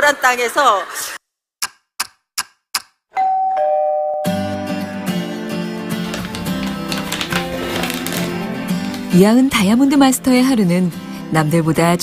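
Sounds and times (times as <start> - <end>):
plucked acoustic guitar music: 4.4 - 11.0.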